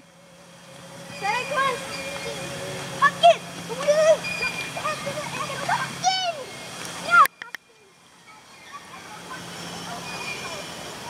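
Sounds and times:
steady low hum: 0.0 - 11.0
distant children's voices: 1.0 - 11.0.

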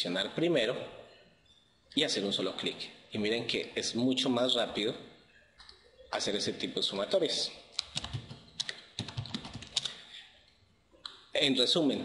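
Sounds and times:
computer keyboard typing: 7.8 - 10.0.

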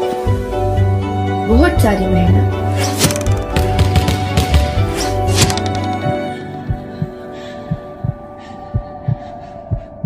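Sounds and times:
heartbeat thumps: 6.0 - 10.0.

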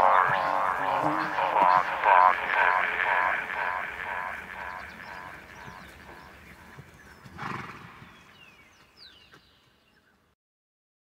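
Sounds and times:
horse blowing: 0.0 - 6.4, 7.3 - 8.0
faint bird chirps: 0.3 - 7.4
horse whinnying: 7.3 - 8.0.

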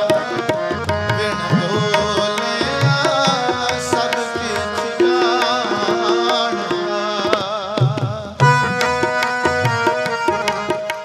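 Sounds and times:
tabla rhythm: 0.0 - 11.0.

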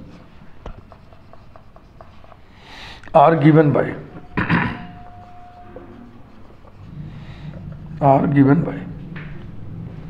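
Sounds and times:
marker writing on whiteboard: 0.0 - 3.5, 5.0 - 8.0.

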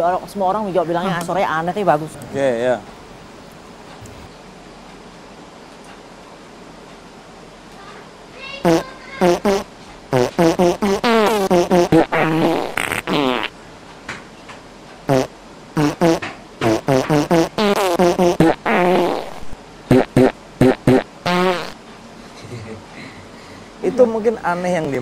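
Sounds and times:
melody of fart-like buzzing notes: 8.6 - 13.5, 15.1 - 21.8.

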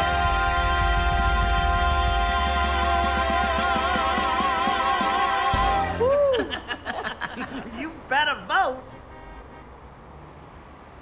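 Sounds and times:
city traffic rumble: 5.7 - 11.0.

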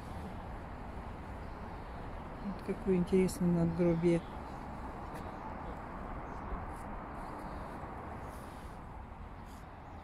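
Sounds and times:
low outdoor background noise: 0.0 - 10.0.

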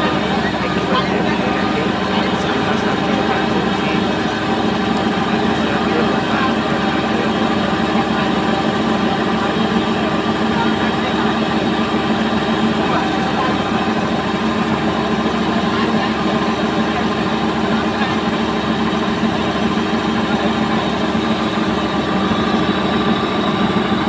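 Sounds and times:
combine harvester running: 0.0 - 24.0.

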